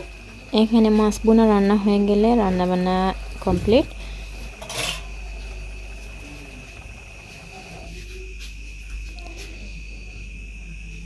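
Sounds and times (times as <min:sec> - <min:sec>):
crickets trilling: 0:00.0 - 0:11.0
low steady hum: 0:00.0 - 0:11.0.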